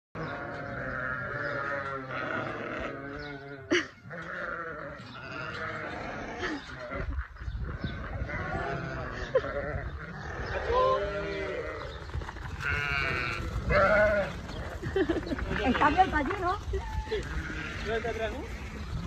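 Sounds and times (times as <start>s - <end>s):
sheep bleating: 0.2s - 7.1s, 8.0s - 12.0s, 12.6s - 14.6s, 15.5s - 19.0s.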